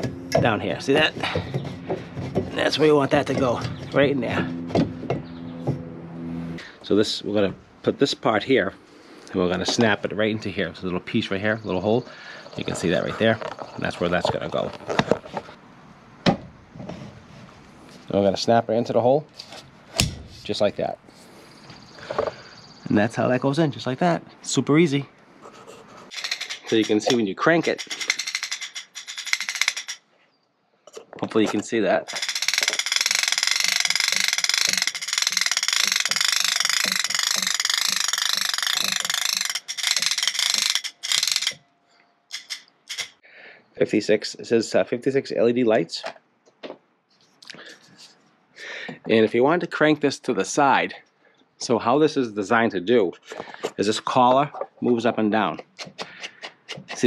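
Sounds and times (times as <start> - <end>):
umbrella crank ratcheting clicks: 26.1 - 30.0, 32.1 - 41.6, 42.3 - 43.2.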